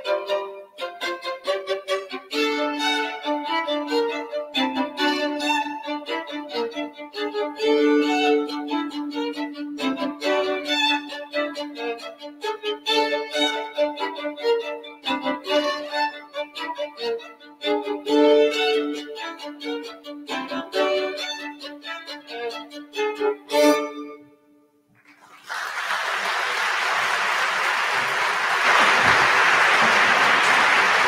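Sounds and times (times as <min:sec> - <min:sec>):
two violins playing classical duet: 0:00.0 - 0:24.4.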